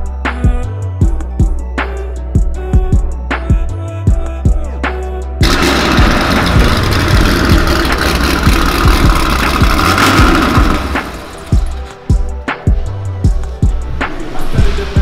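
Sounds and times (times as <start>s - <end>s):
music with a steady beat: 0.0s - 15.0s
car engine running loudly: 5.4s - 11.9s.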